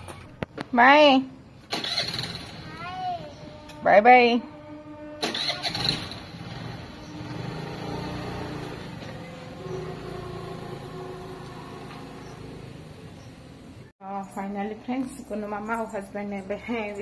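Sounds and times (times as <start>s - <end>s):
motor scooter engine pulling away: 1.7s - 3.7s, 5.1s - 13.9s.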